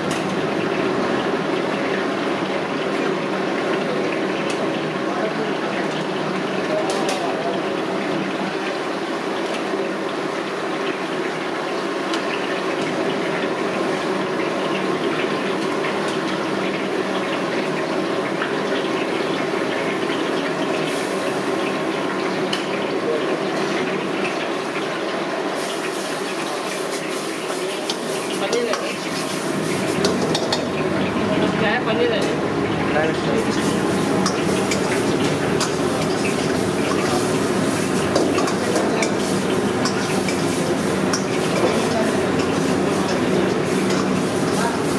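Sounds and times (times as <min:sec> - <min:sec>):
gravy bubbling in a wok: 0:00.0 - 0:44.9
kitchen noise: 0:00.0 - 0:44.9
bright sizzling: 0:25.5 - 0:44.9
pan clatter: 0:29.9 - 0:30.7, 0:33.5 - 0:44.9.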